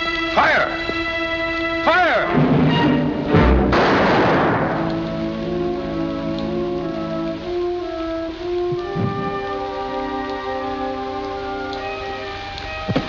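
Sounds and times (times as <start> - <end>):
orchestral film score: 0.0 - 13.0
loud pistol shot with echo: 3.7 - 4.9.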